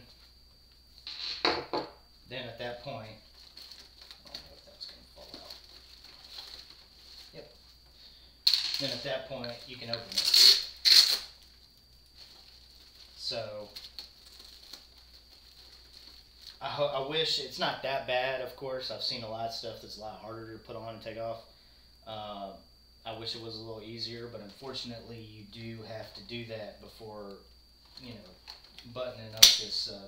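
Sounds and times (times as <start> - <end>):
rustling: 3.2 - 7.9, 8.8 - 16.6.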